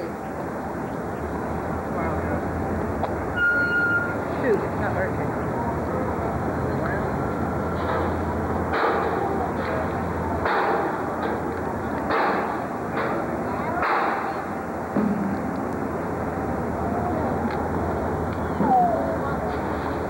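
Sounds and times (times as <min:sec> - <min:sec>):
low street rumble: 0:00.0 - 0:20.0
sharp bangs: 0:07.8 - 0:15.6.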